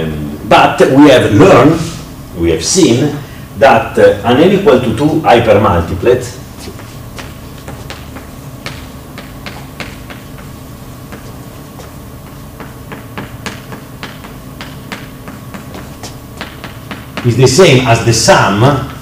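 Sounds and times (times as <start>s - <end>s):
low room hum: 0.0s - 19.0s
chalk tapping and scratching: 6.6s - 17.4s.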